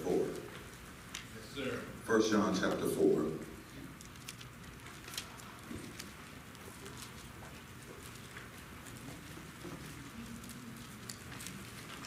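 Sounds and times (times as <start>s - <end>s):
low room hum: 0.0s - 12.0s
book pages turning: 3.8s - 12.0s.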